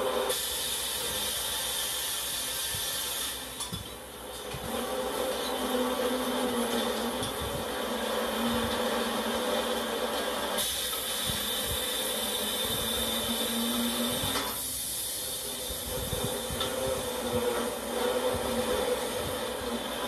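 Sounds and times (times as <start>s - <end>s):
high machine whine: 0.0s - 20.0s
log-processing machinery humming: 0.0s - 20.0s.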